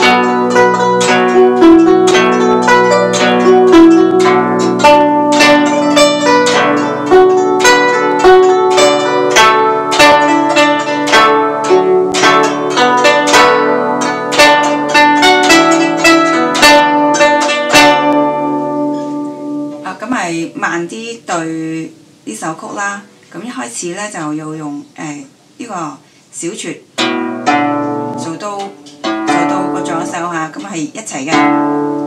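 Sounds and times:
guzheng plucked melody: 0:00.0 - 0:22.8, 0:26.4 - 0:32.0.

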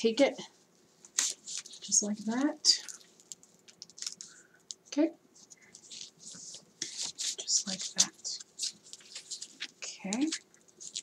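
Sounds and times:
paper tape clicks and crinkles: 0:01.1 - 0:04.8, 0:05.5 - 0:11.0.

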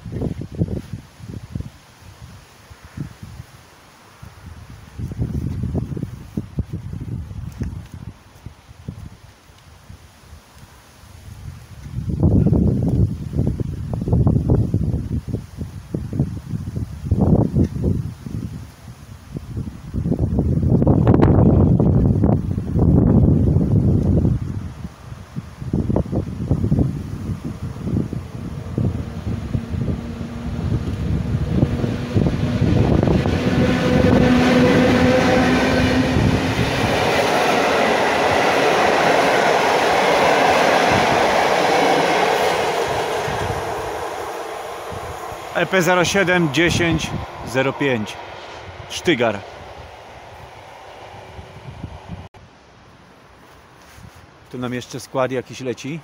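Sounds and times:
wind buffeting microphone: 0:00.0 - 0:03.6, 0:04.2 - 0:10.1, 0:11.1 - 0:52.4
train passing at speed: 0:27.3 - 0:52.3.

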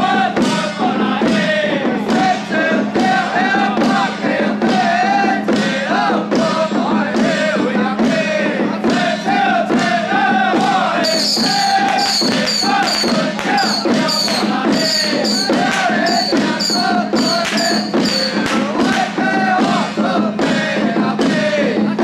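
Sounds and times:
handheld drums beaten with sticks: 0:00.0 - 0:22.0
men chanting in unison: 0:00.0 - 0:22.0.

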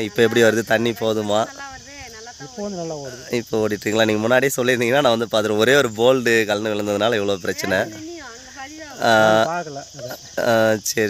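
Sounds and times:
faint high insect buzz: 0:00.0 - 0:11.0.

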